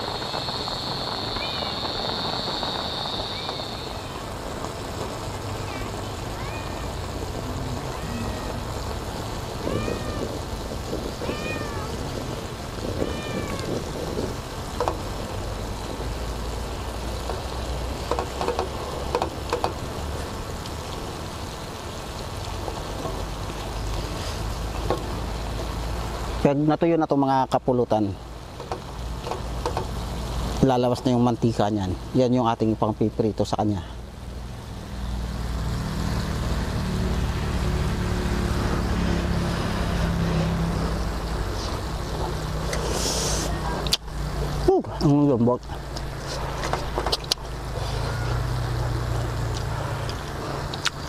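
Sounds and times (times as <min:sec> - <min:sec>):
thin high whine: 0:00.0 - 0:04.2
outdoor background noise: 0:00.0 - 0:51.0.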